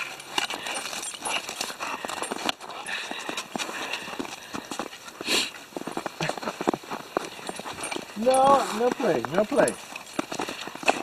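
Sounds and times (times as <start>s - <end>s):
crunching footsteps in snow: 0.0s - 11.0s.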